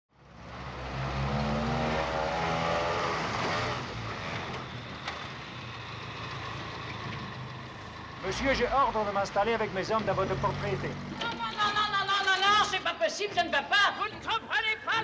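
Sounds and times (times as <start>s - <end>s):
truck engine running: 3.2s - 12.8s.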